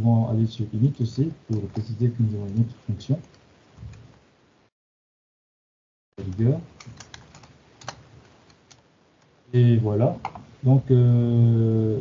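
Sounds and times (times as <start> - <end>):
computer keyboard typing: 6.2 - 8.0.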